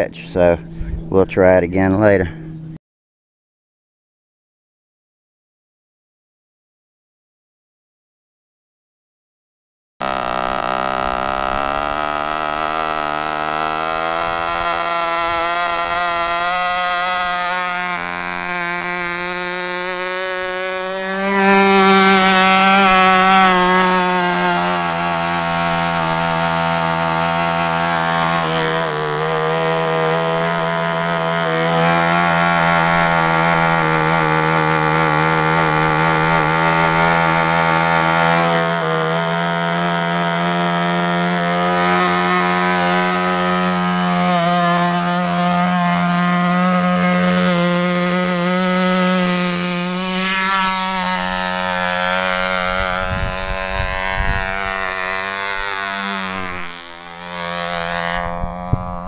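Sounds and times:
model plane engine whining: 10.0 - 59.0.

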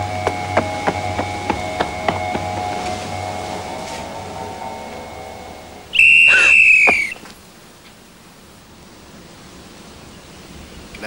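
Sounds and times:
sustained steady tones: 0.0 - 9.2
shrill whistle blast: 5.9 - 7.2.

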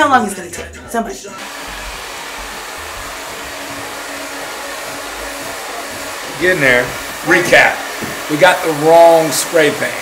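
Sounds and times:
hair dryer blowing: 1.4 - 10.0.

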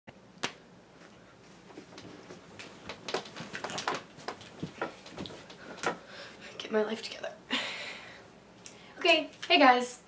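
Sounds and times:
soft movement sounds: 0.9 - 6.8.

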